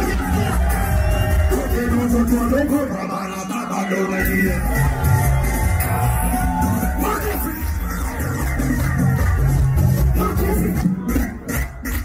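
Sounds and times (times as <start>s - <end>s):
heavy pulsing bass beat: 0.0s - 12.0s
loud live music: 0.0s - 12.0s.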